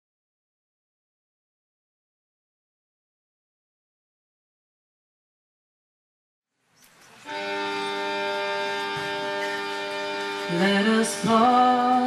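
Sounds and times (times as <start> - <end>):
acoustic guitar: 6.9 - 12.0
fiddle holding bowed chord: 7.2 - 12.0.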